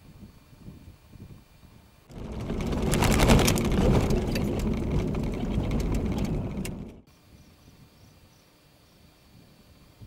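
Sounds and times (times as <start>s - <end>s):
planks knocking and clattering: 2.1s - 7.0s
tyres rumbling over wooden boards: 2.1s - 7.0s.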